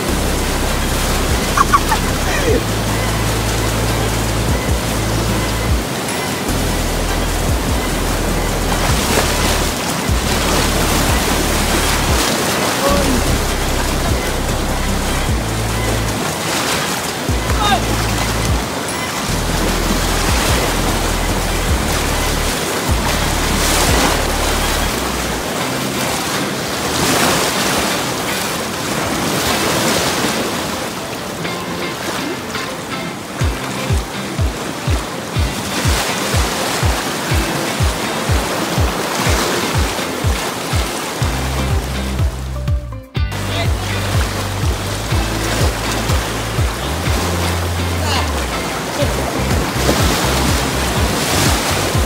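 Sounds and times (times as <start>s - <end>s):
music with deep bass line: 0.0s - 26.2s, 33.4s - 52.0s
river rapids rushing: 0.0s - 42.6s, 43.3s - 52.0s
kick drum beat: 1.3s - 2.7s, 4.5s - 6.0s, 7.5s - 7.9s, 8.8s - 11.4s, 12.0s - 12.4s, 15.3s - 15.5s, 17.3s - 18.8s, 20.2s - 20.8s, 21.7s - 22.0s, 22.9s - 23.1s, 23.9s - 24.1s, 33.4s - 47.4s, 48.5s - 52.0s.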